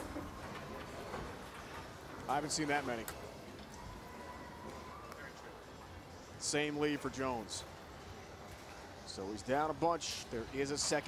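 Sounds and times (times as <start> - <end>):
low hum of hall: 0.0 - 11.0.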